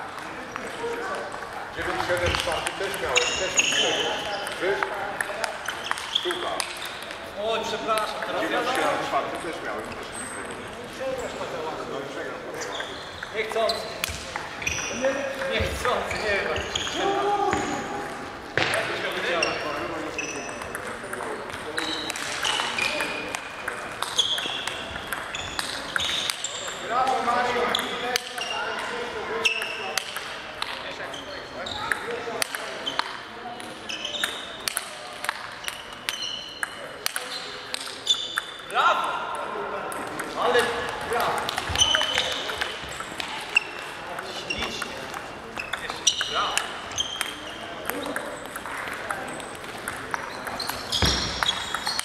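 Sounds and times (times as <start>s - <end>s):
table tennis balls clicking: 0.1s - 10.7s, 18.6s - 30.8s, 31.9s - 52.0s.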